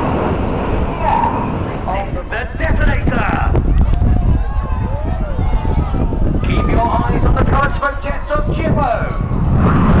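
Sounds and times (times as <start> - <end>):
jet engines roaring: 0.0 - 10.0
wind on microphone: 0.0 - 10.0
voices talking: 0.9 - 9.2.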